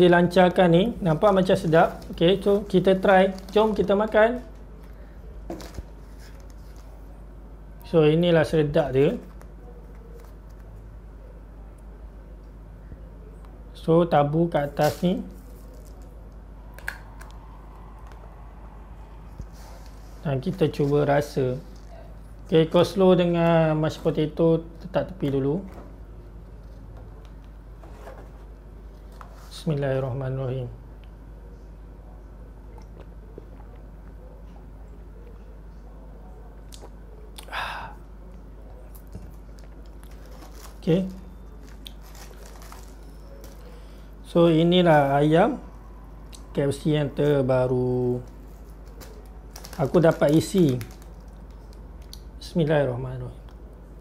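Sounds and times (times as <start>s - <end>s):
low room hum: 0.0s - 54.0s
paper and cardboard crinkling: 1.0s - 7.0s, 39.1s - 43.8s, 48.2s - 51.8s.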